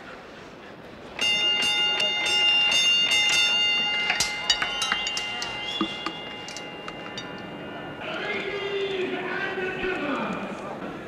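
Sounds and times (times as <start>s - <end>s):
steady high tones: 1.2s - 9.8s.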